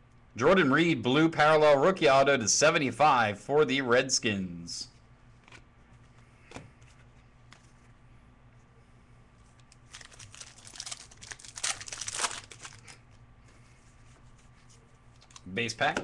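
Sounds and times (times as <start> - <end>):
wrapper being torn and crinkled: 9.6 - 13.2.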